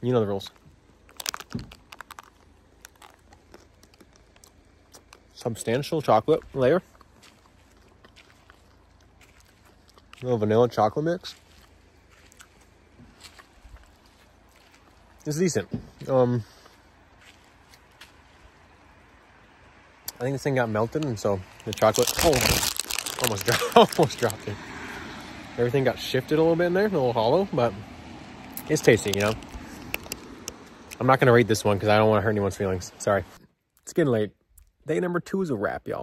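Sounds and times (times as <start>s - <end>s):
faint outdoor background noise: 0.0s - 36.0s
chewing crunches and clicks: 0.5s - 5.4s, 6.8s - 10.3s, 11.3s - 15.3s, 20.9s - 24.5s, 28.4s - 31.1s.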